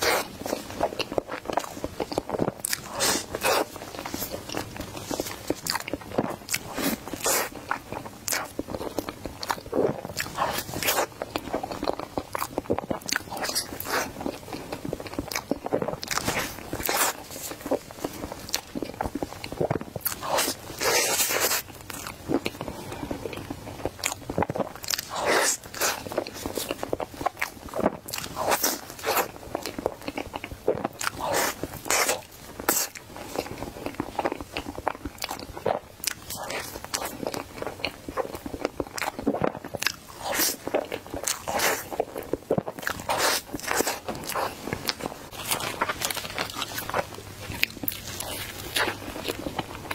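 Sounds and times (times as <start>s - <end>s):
person biting and chewing: 0.0s - 49.9s.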